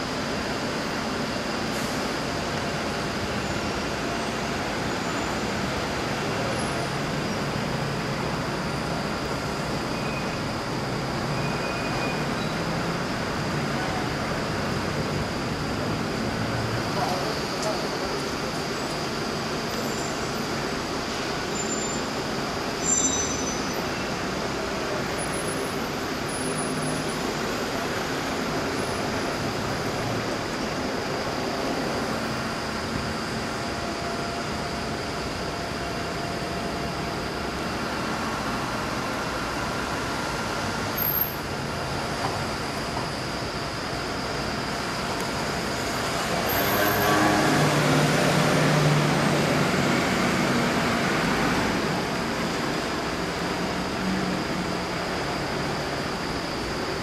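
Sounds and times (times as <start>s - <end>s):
heavy vehicle engine: 0.0s - 57.0s.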